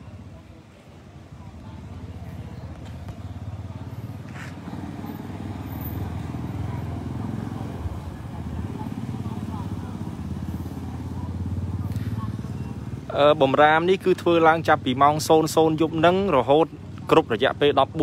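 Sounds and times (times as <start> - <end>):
motorcycle engine running: 1.4 - 18.0.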